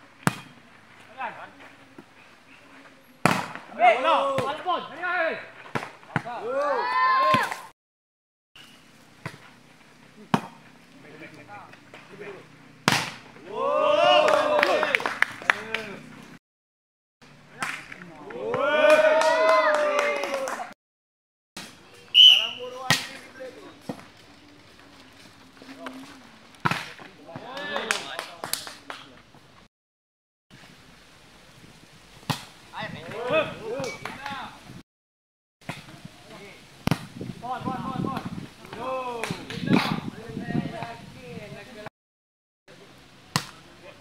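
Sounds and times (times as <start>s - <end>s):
volleyball smacks: 3.2s - 3.7s, 12.8s - 13.3s, 22.8s - 23.3s, 26.6s - 29.1s, 32.3s - 32.5s, 36.8s - 37.1s
players shouting: 3.7s - 5.5s, 6.2s - 7.7s, 13.4s - 16.1s, 18.1s - 20.7s
voices calling out: 9.9s - 16.3s, 21.8s - 29.4s
volleyball struck by hand: 12.8s - 13.2s, 36.8s - 37.1s.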